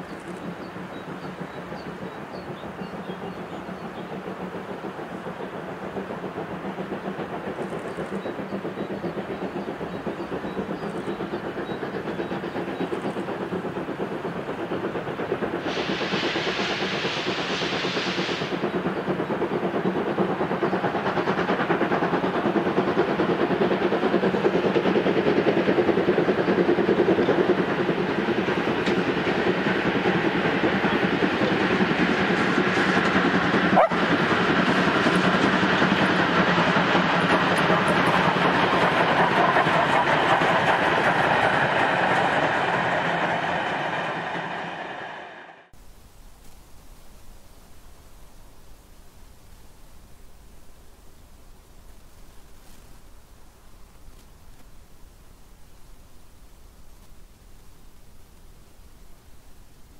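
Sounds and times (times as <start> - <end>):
train coaches clattering on rails: 0.0 - 45.0
high hiss: 0.0 - 45.2
steam locomotive exhaust: 0.0 - 45.7.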